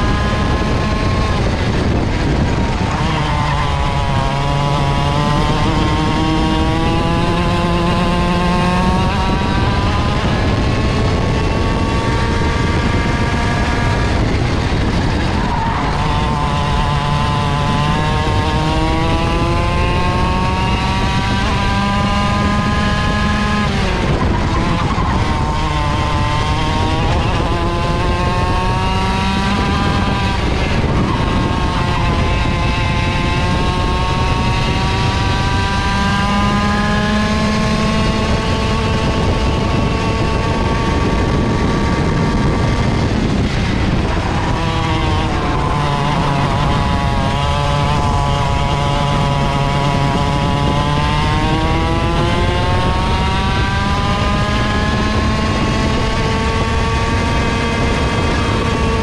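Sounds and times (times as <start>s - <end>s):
two-stroke kart engine revving: 0.0s - 59.0s.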